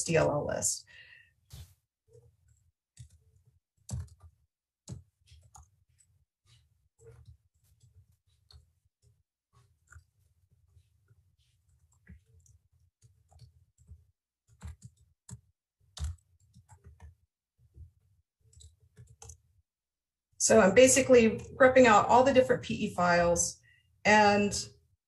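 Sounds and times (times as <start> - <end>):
keyboard keystrokes: 3.9 - 4.3, 13.3 - 15.4, 16.0 - 17.2, 18.5 - 19.4.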